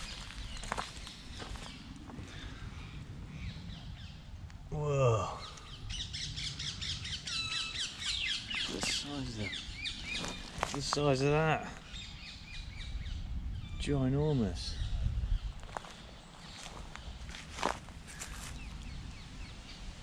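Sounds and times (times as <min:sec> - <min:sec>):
birds chirping and calling: 0:00.0 - 0:04.3, 0:05.2 - 0:20.0
low rumble of wind: 0:00.0 - 0:20.0
man exclaiming: 0:04.7 - 0:05.7.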